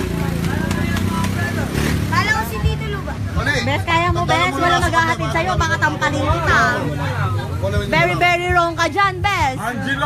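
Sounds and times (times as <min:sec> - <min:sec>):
people talking and calling out: 0:00.0 - 0:10.0.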